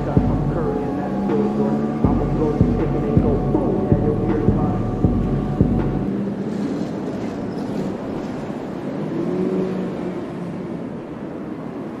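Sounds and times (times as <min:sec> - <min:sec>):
car engine running: 0:00.0 - 0:06.8.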